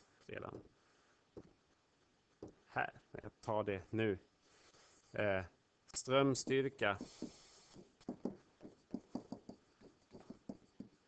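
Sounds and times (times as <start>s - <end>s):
pen writing on paper: 7.0s - 11.0s.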